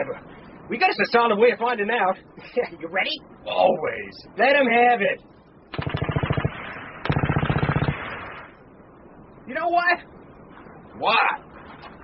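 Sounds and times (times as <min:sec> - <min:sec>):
machine-gun fire bursts: 0:05.7 - 0:08.6.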